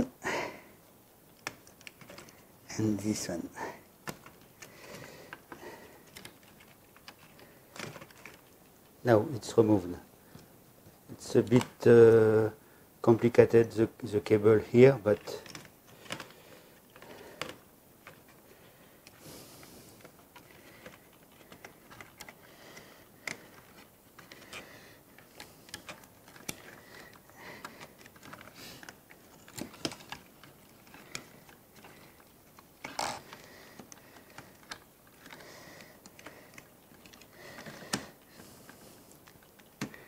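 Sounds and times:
small plastic clicks and taps: 39.1s - 40.0s.

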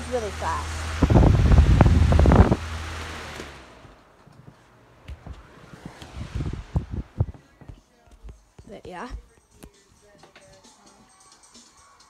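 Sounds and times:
fan airflow buffeting microphone: 0.0s - 10.8s.

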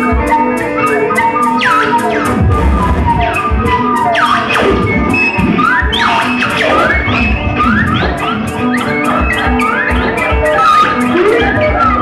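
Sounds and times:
dense electronic guitar noise: 0.0s - 12.0s.

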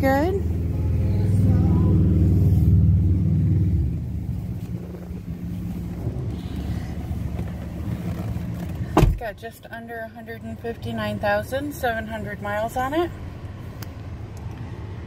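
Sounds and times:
car engine idling: 0.0s - 14.6s.

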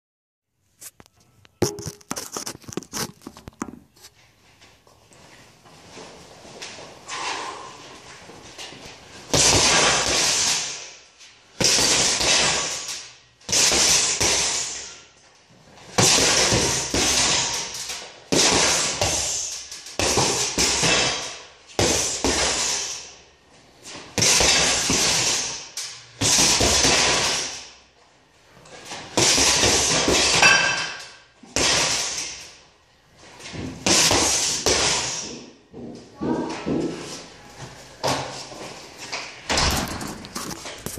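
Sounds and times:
phone rustling and bumping: 0.8s - 4.0s
punches hitting heavy bag: 9.3s - 10.8s, 11.6s - 12.9s, 13.5s - 14.7s, 15.9s - 22.8s, 24.2s - 25.5s, 26.2s - 27.6s, 29.2s - 30.9s, 31.5s - 32.3s, 33.8s - 35.2s.

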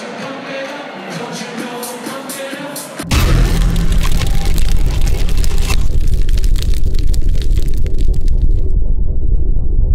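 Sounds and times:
dense crackling: 3.1s - 8.8s
deep rumble: 3.1s - 9.9s.

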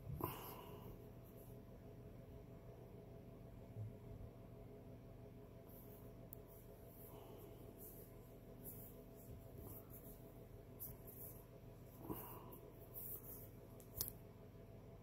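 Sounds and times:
low steady hum: 0.0s - 15.0s
watch strap rubbing: 7.7s - 12.0s, 12.8s - 14.1s.

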